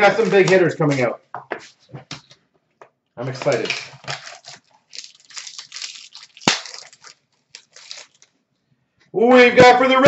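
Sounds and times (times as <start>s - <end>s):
plastic wrapper crinkling and tearing: 3.3s - 8.4s.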